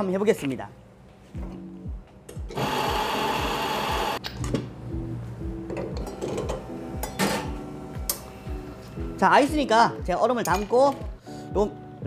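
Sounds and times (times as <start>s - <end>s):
quiet background music: 0.0s - 12.0s
espresso machine running: 2.6s - 4.2s.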